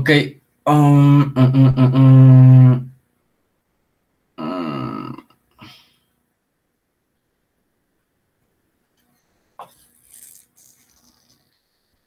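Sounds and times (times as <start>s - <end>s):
man's wordless vocal sound: 4.4s - 5.3s.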